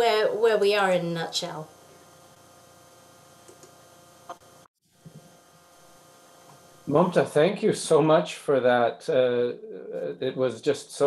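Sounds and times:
faint electrical hum: 0.0 - 11.0
small click: 3.4 - 4.4.

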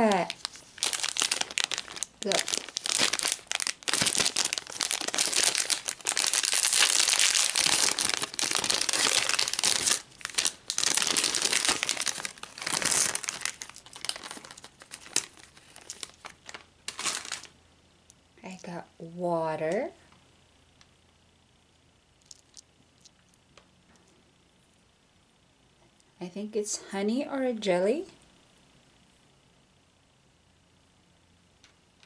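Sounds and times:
plastic bag crinkling: 0.0 - 17.6, 22.2 - 23.3.

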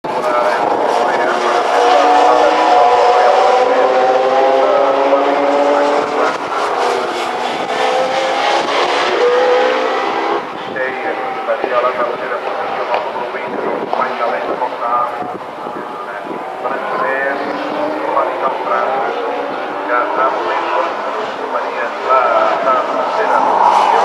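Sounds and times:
racing car engines passing by: 0.1 - 24.0.

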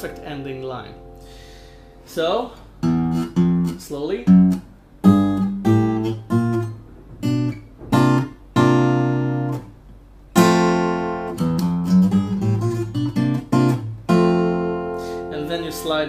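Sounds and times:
fingerpicked acoustic guitar: 0.0 - 16.0.

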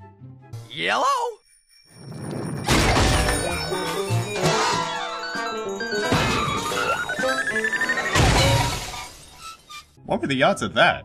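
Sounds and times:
loud cartoon crash: 2.6 - 3.8, 5.9 - 7.1, 8.0 - 9.3
sci-fi beeping rising in pitch: 3.7 - 8.2.

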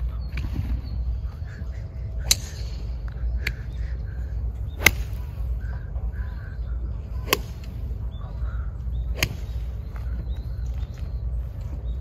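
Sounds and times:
golf club striking balls: 2.3 - 2.8, 4.7 - 5.3, 7.2 - 7.8, 8.9 - 9.7
crows cawing: 8.2 - 9.0.

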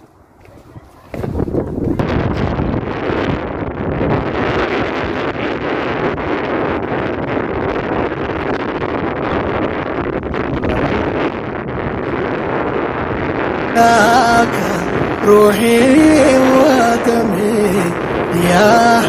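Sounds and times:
wind blowing across microphone: 0.0 - 19.0.

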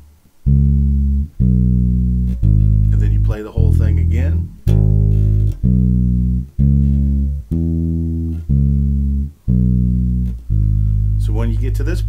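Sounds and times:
electric bass blues line: 0.0 - 12.0.

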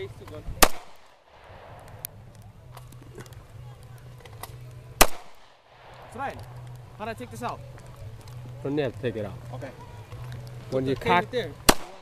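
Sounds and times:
pistol shot with echo: 0.6 - 2.0, 5.0 - 6.2, 11.7 - 12.0.

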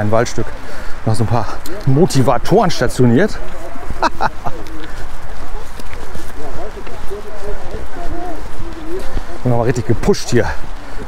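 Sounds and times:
footsteps on path: 0.0 - 11.0
people talking over one another: 0.0 - 11.0.

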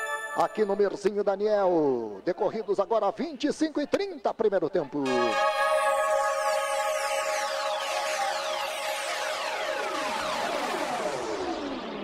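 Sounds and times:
synthesizer jingle gliding downward: 0.0 - 1.0, 5.0 - 12.0.

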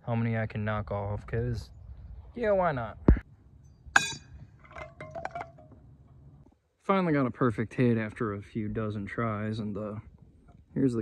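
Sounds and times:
cans clattering: 4.6 - 5.8.

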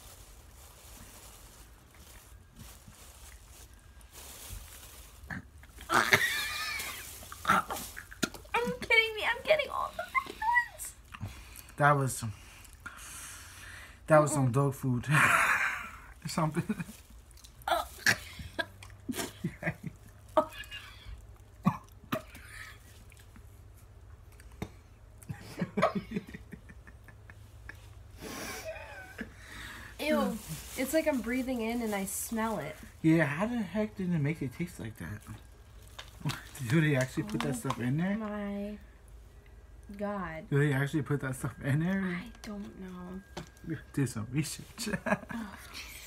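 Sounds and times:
people chewing: 17.0 - 25.4
people coughing and gagging: 21.6 - 22.8.

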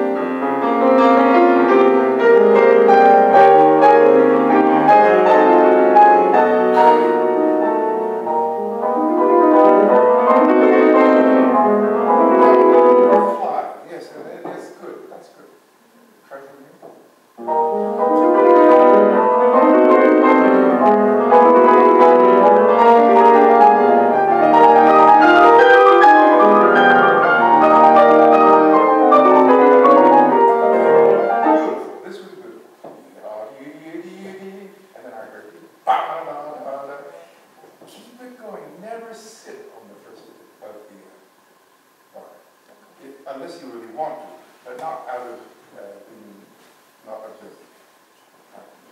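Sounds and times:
grand piano chords: 0.0 - 41.1.

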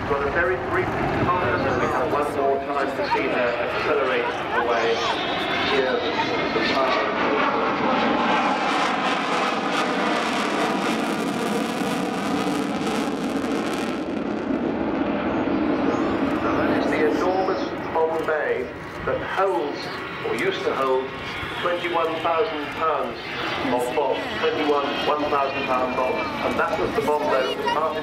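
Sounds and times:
jet bomber flying overhead: 0.0 - 28.0.

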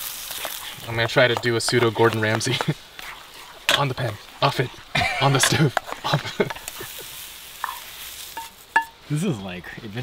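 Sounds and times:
eggs sizzling in a frying pan: 0.0 - 10.0
metal spatula scraping: 0.3 - 8.9.

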